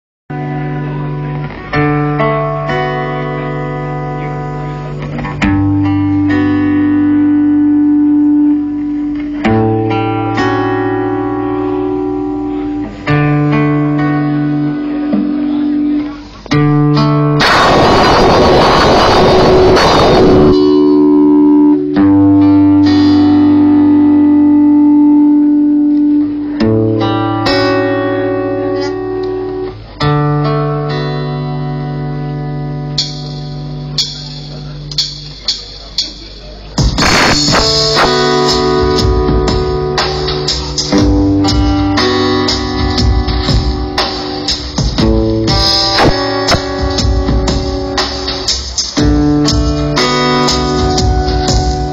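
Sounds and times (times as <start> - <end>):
electronic folk music: 0.3 - 51.9
plucked guitar: 0.3 - 51.9
burst of noise: 17.4 - 20.6, 37.0 - 38.5.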